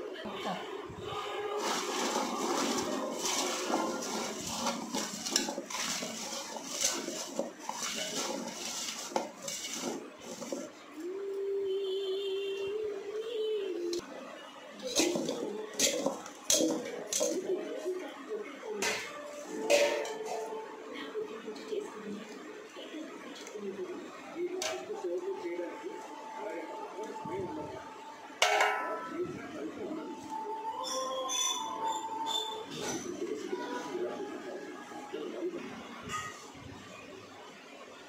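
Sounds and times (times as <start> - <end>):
food pieces knocking in metal pot: 2.0 - 10.7, 15.0 - 17.5.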